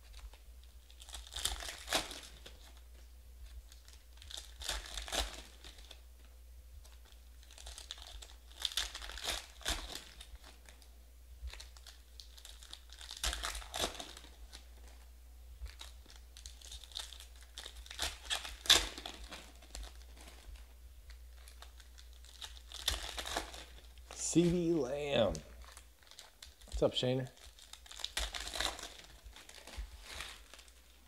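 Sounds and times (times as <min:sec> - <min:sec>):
foil wrappers crinkling and tearing: 0:00.0 - 0:06.0, 0:06.8 - 0:10.9, 0:11.5 - 0:31.0.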